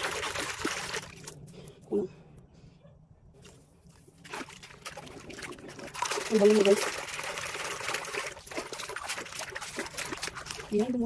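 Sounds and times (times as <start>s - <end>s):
hand splashing in soapy water: 4.2s - 11.0s.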